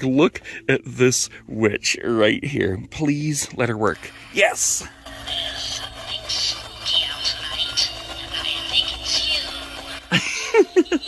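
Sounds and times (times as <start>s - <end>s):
steady low hum: 0.0s - 11.0s
toy voice through small speaker: 5.1s - 10.1s.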